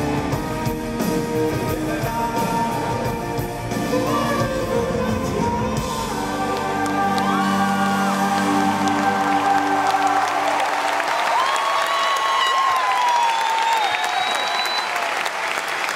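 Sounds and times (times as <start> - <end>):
live band held chord: 0.0 - 11.2
audience applause and cheering: 0.0 - 15.9.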